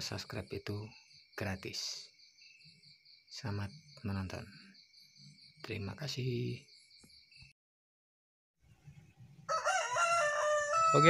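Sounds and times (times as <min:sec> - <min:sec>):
rooster crowing: 0:09.4 - 0:11.0.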